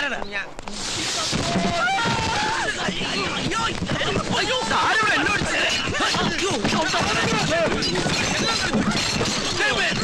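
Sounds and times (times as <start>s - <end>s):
men scuffling on floor: 0.6s - 10.0s
men shouting and crying out: 1.2s - 10.0s
kitchenware crashing and shattering: 6.1s - 10.0s.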